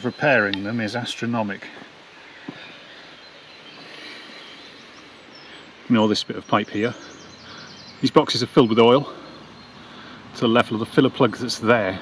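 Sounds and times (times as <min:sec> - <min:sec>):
faint even hiss: 0:00.0 - 0:12.0.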